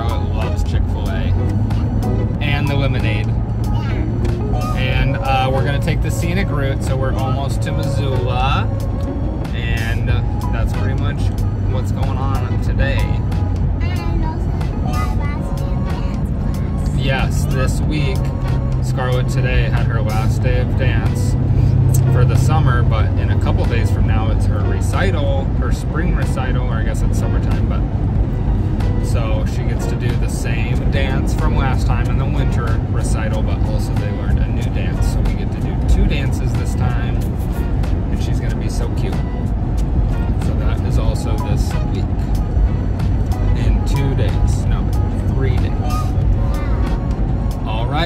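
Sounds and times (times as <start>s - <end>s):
man talking: 0.0s - 1.4s, 2.3s - 3.4s, 4.6s - 8.7s, 9.5s - 13.3s, 16.8s - 27.9s, 29.0s - 37.3s, 38.1s - 39.3s, 40.3s - 42.2s, 43.5s - 46.2s, 47.6s - 48.0s
background music: 0.0s - 48.0s
car road and engine drone: 0.0s - 48.0s.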